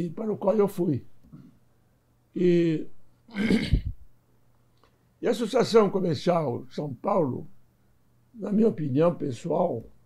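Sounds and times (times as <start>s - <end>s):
man speaking: 0.0s - 1.0s, 2.4s - 2.9s, 5.2s - 7.5s, 8.4s - 9.9s
man clearing his throat: 3.3s - 4.0s.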